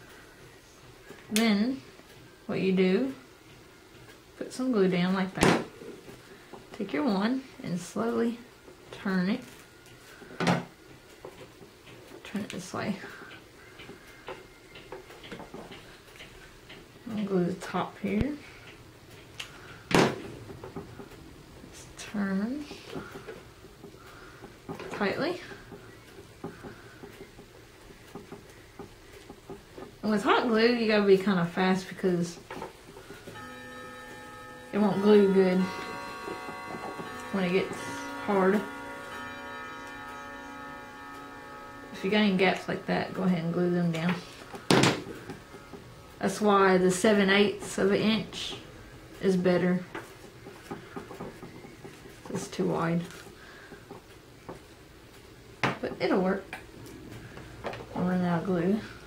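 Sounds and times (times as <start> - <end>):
sitar-like instrumental drone: 19.6 - 54.6.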